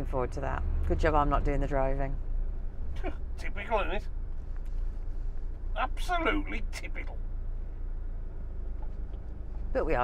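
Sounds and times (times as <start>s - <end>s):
diesel engine rumble: 0.0s - 10.0s
road noise: 0.0s - 10.0s.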